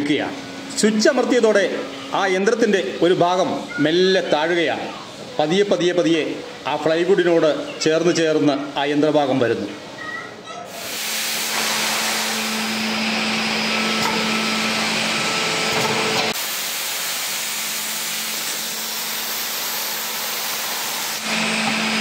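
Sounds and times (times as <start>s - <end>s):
factory machinery hiss and hum: 10.7s - 22.0s.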